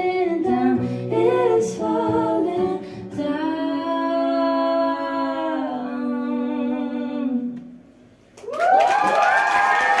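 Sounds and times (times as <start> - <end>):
woman singing: 0.0 - 7.7
audience applauding and cheering: 8.4 - 10.0.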